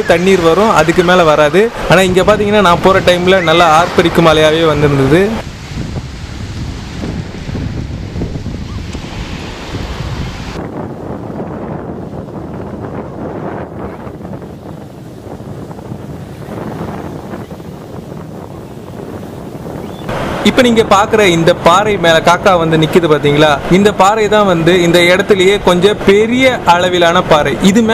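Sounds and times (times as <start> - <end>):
surf washing over rocks: 0.0 - 27.9
wind buffeting microphone: 0.0 - 27.9.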